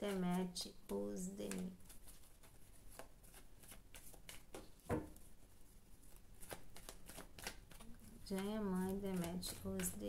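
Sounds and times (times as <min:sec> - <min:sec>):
cards being shuffled by hand: 0:00.0 - 0:10.0.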